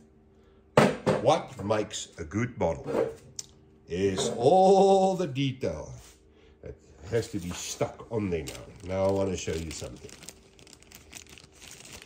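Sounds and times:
faint rustling and handling: 7.0s - 12.0s.

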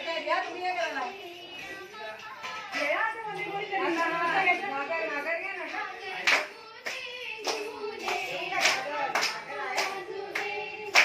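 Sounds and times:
women singing or calling: 0.0s - 11.0s
people clapping in rhythm: 2.2s - 4.5s, 5.7s - 11.0s.

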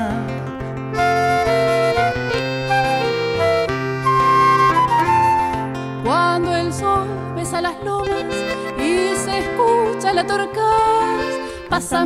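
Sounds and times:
acoustic guitar accompaniment: 0.0s - 12.0s
steady bass line: 0.9s - 5.7s
piano accordion melody: 0.9s - 5.8s, 8.0s - 11.9s.

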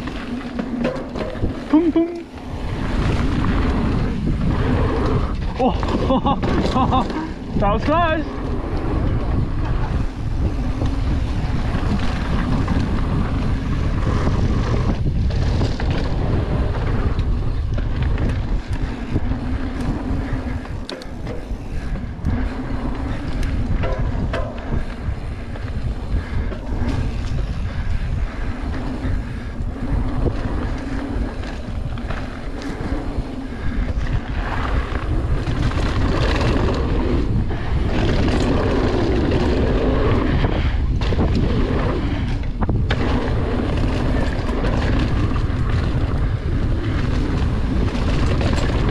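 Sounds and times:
bike rattling over bumps: 0.0s - 48.9s
tyre noise on dirt: 0.0s - 48.9s
wind rumbling over microphone: 0.0s - 48.9s.

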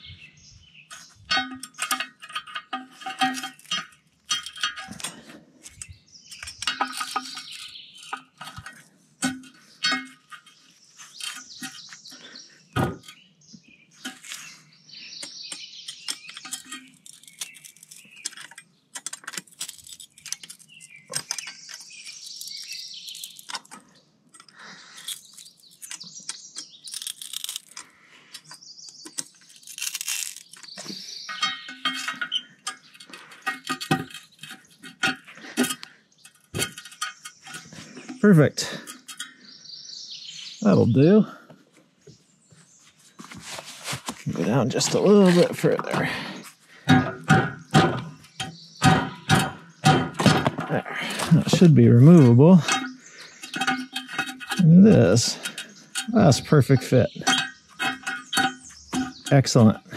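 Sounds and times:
birds chirping: 0.0s - 59.9s
metal grates clanking and scraping: 0.9s - 5.4s, 6.4s - 11.9s, 30.7s - 39.4s, 43.4s - 59.9s.

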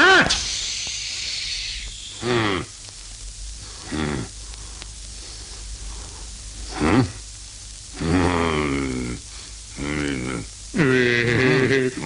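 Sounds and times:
long hiss: 0.0s - 12.0s.

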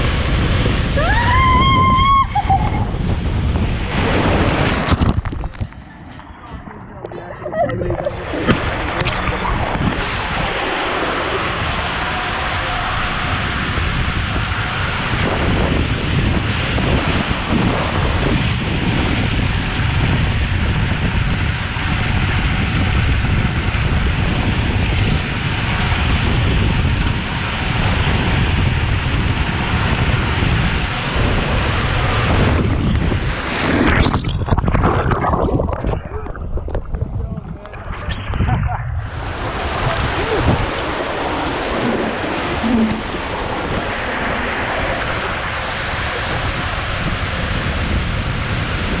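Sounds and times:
water rushing in slide tube: 0.0s - 5.7s, 7.1s - 49.0s
wind on microphone: 0.0s - 49.0s.

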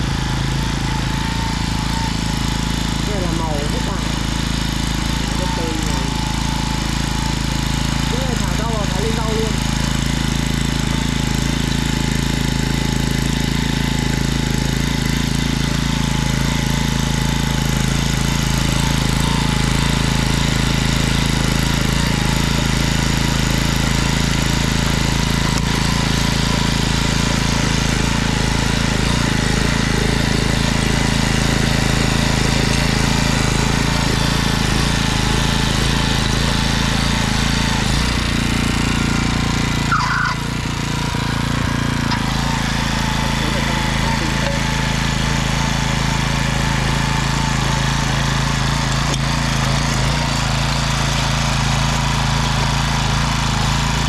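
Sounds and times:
small tiller engine running: 0.0s - 54.0s
tines churning stony soil: 0.0s - 54.0s.

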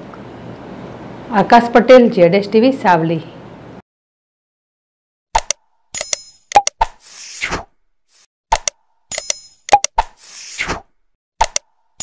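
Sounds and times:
sharp clicks: 5.4s - 6.9s, 8.5s - 10.2s, 11.4s - 11.7s.

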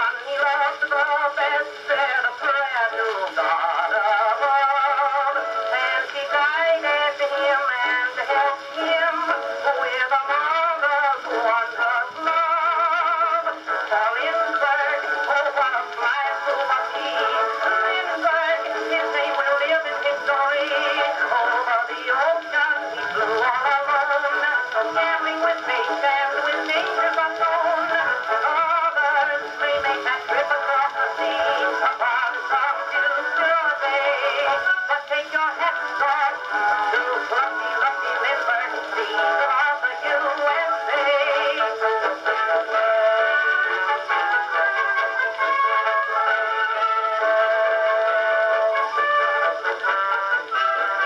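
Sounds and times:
old phonograph song with band: 0.0s - 51.0s.

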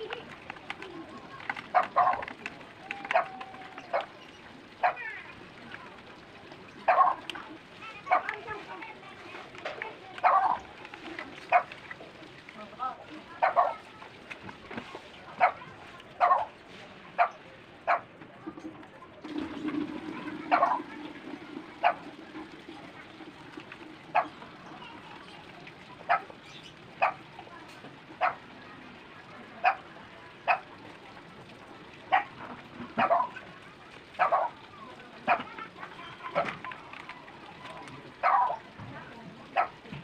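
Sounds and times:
dog barking: 1.7s - 2.2s, 6.9s - 7.2s, 10.2s - 10.6s, 13.4s - 13.8s, 15.4s - 15.6s, 16.2s - 16.5s, 27.0s - 27.2s, 28.2s - 28.4s, 29.6s - 29.8s, 30.5s - 30.7s, 32.1s - 32.3s, 33.0s - 33.4s, 34.2s - 34.6s, 38.2s - 38.6s, 39.6s - 39.8s.

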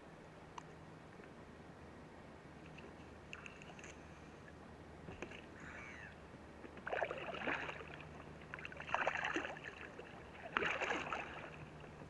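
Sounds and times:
paddle splashing in water: 6.7s - 11.8s.

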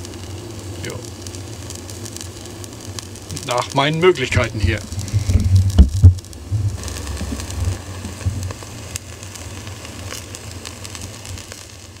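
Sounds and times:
meat sizzling on a grill: 0.0s - 12.0s
low rumble: 4.2s - 8.9s.

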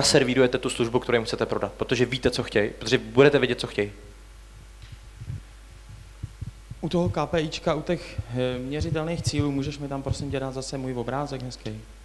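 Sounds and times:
man speaking: 0.0s - 4.0s, 6.8s - 11.9s
low electrical hum: 0.0s - 12.0s
soft low thumps: 4.4s - 10.6s.

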